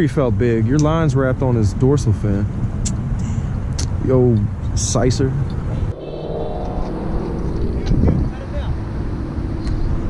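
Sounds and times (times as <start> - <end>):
road traffic rumble: 5.4 - 10.0.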